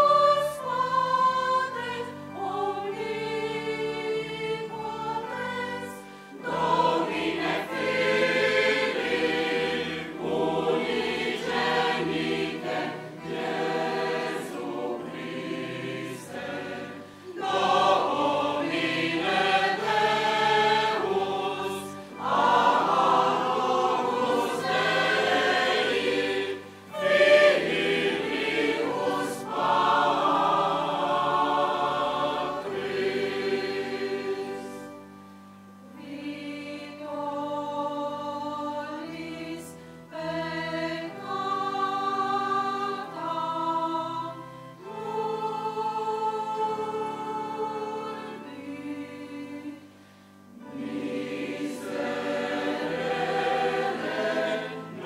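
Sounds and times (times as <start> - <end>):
mixed choir singing sacred music: 0.0 - 55.0.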